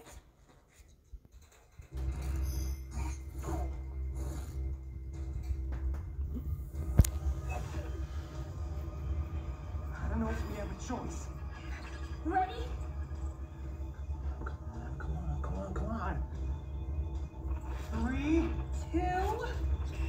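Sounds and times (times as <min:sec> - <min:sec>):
deep rumble: 0:01.8 - 0:20.0
dramatic soundtrack music: 0:01.9 - 0:20.0.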